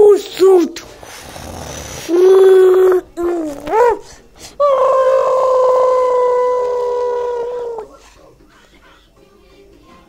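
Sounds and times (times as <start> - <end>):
person holding a high ohhh: 3.9 - 7.9.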